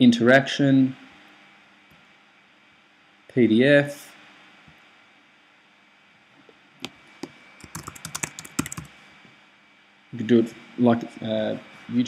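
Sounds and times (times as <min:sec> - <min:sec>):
computer keyboard typing: 0:07.6 - 0:08.9.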